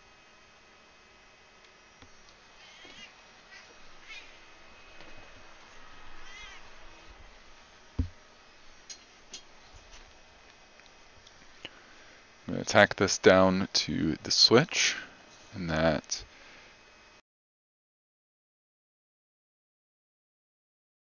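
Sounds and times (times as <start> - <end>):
dull thump: 8.0 - 8.2.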